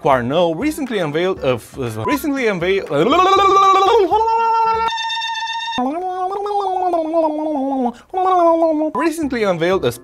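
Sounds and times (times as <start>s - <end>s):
flat electronic beep: 4.6s - 6.2s.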